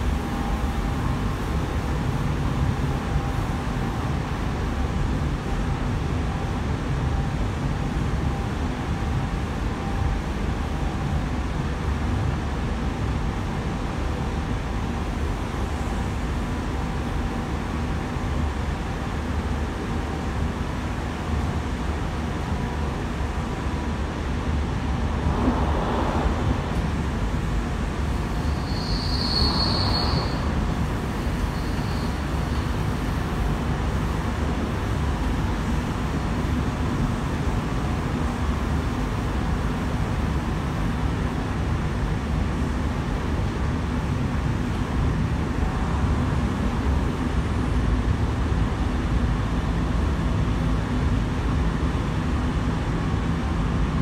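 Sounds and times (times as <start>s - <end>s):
train rumbling: 21.6s - 41.4s
high wheel squeal: 28.2s - 32.8s.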